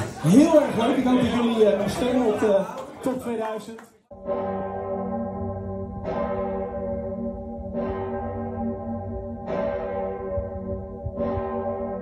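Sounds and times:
large church bell tolling: 4.1 - 12.0.

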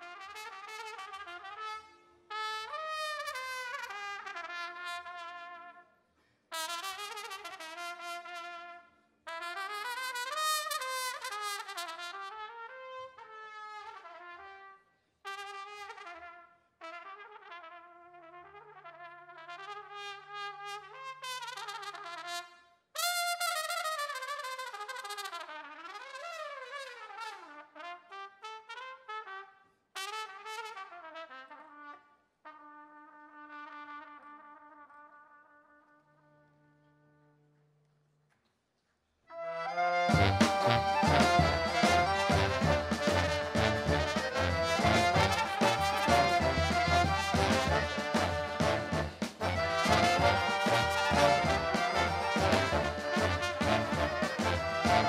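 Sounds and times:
solo trumpet melody: 0.0 - 5.8, 6.5 - 37.6, 39.3 - 55.0
low brass holding notes: 39.4 - 55.0.

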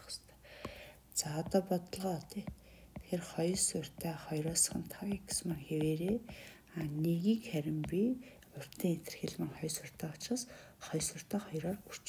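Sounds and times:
person talking indistinctly: 1.2 - 10.3.

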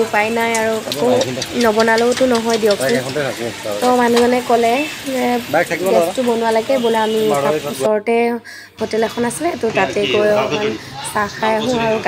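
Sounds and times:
woman talking: 0.0 - 3.1, 3.8 - 12.0.

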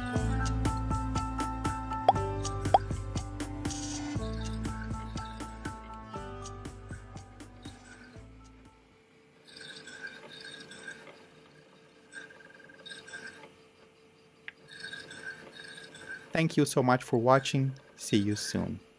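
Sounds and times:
background music: 0.0 - 8.9.

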